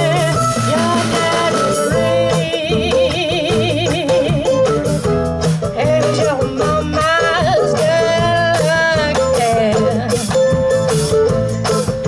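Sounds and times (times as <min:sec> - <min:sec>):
woman singing with vibrato: 0:00.0 - 0:04.8, 0:05.7 - 0:10.4
bass: 0:00.0 - 0:12.0.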